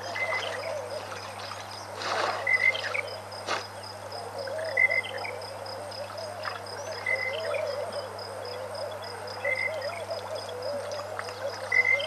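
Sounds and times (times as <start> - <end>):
insect chirping: 0.0 - 12.0
low wavering animal call: 4.3 - 12.0.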